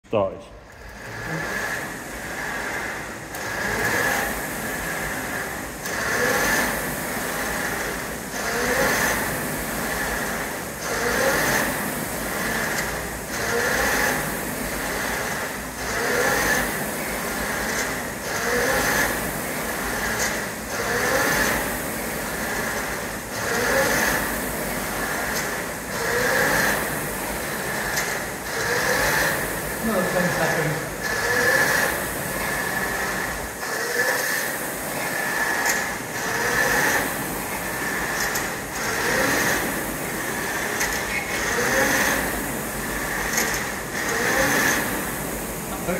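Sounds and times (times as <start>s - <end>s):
rowing machine flywheel whirring: 0.6s - 45.9s
rowing machine knocking: 0.8s - 45.9s.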